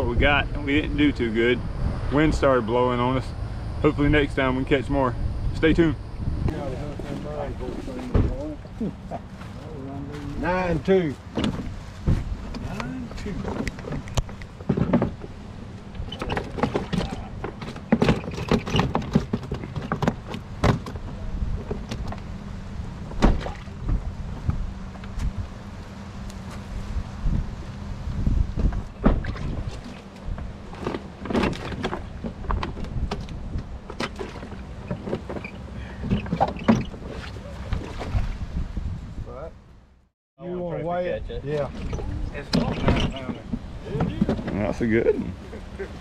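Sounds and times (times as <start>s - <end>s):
wind on microphone: 0.0s - 9.1s, 22.9s - 25.6s, 26.7s - 30.8s, 31.4s - 35.1s, 36.1s - 39.6s.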